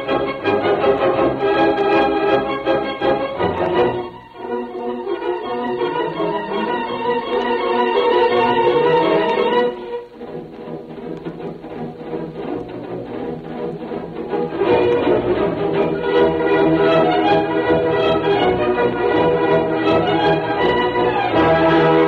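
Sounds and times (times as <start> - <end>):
soft orchestral music with brass: 0.0 - 22.0.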